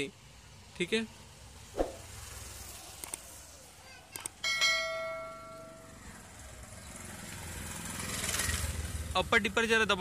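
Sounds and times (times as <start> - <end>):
faint clicks: 3.0 - 3.3
ringing bell-like tone: 4.4 - 6.0.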